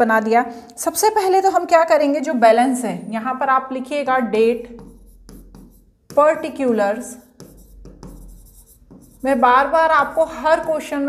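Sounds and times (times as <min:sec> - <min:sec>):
stylus rubbing on glass: 0:04.6 - 0:11.0.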